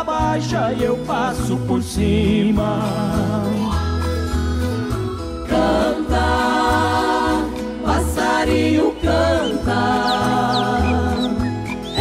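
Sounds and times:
nylon-string acoustic guitar: 0.0 - 12.0
steady bass line: 0.0 - 12.0.

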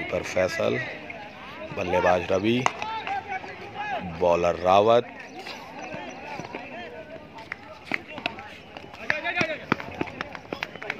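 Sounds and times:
players running: 0.1 - 10.9.

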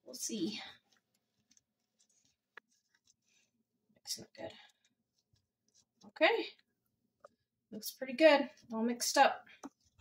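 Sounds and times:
wooden spoon stirring in glass bowl: 0.3 - 6.4.

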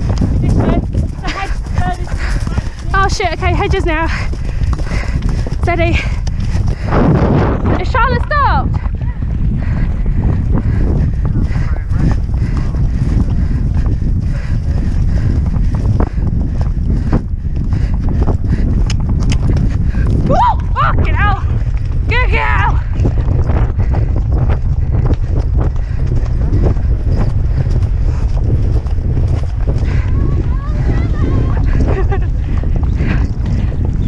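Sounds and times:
horse hooves on turf: 0.0 - 34.0
wind buffeting microphone: 0.0 - 34.0.

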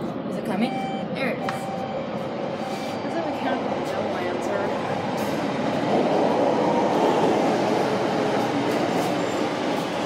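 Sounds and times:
train rumbling through station: 0.0 - 10.0.

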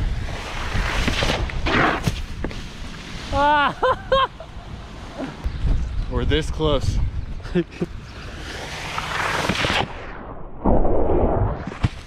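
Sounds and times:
person laughing: 3.3 - 5.4, 7.4 - 8.0
wind buffeting microphone: 4.6 - 8.6.

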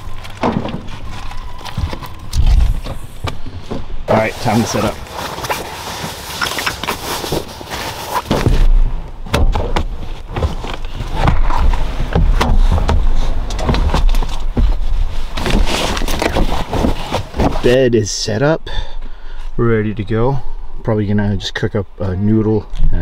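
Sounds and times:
low rumble: 0.0 - 5.2
gear knocking and thumping: 8.2 - 17.7.

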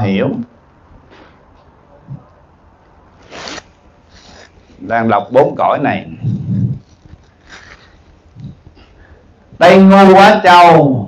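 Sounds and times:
close rustle: 3.2 - 4.8, 6.5 - 8.6.

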